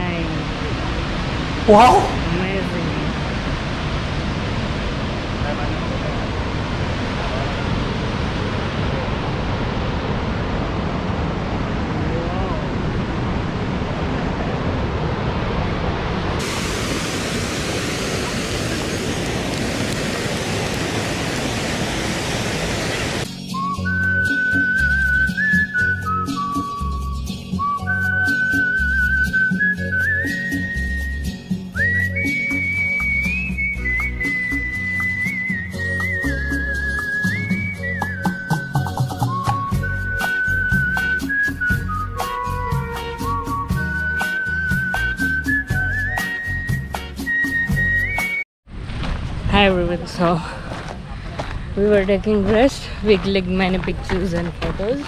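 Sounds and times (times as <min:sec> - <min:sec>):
waterfall rushing: 0:00.2 - 0:23.3
whistled melody over a beat: 0:23.3 - 0:48.5.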